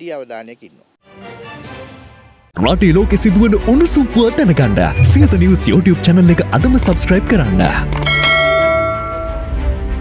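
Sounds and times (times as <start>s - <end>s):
background music: 1.0s - 10.0s
bell chime ringing: 8.0s - 9.5s.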